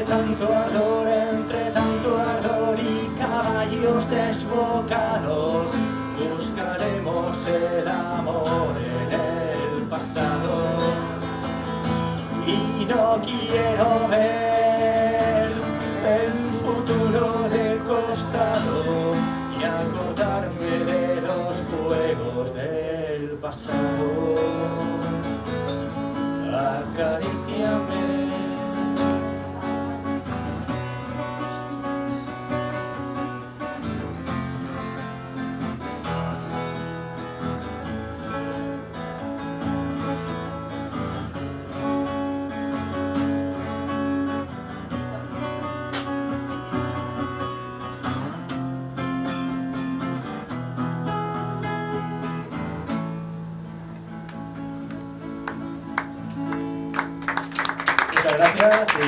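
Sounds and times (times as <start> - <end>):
acoustic guitar strumming chords: 0.0 - 59.0.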